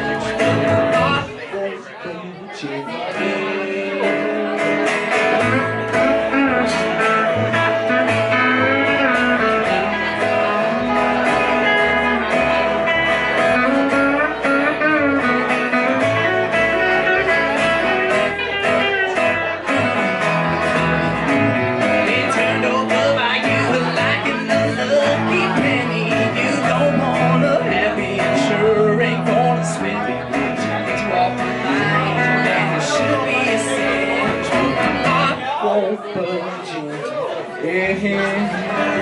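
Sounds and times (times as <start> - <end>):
upright bass line: 0.0 - 1.5, 3.2 - 36.9, 37.6 - 39.0
small band playing blues-country: 0.0 - 39.0
bending electric guitar lines: 3.0 - 36.6.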